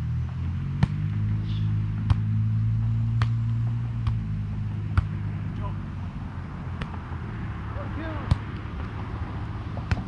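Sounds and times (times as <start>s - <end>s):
low motor hum: 0.0s - 10.0s
hands slapping volleyball: 0.7s - 4.3s, 4.9s - 5.2s, 6.7s - 7.1s, 8.2s - 9.0s, 9.7s - 10.0s.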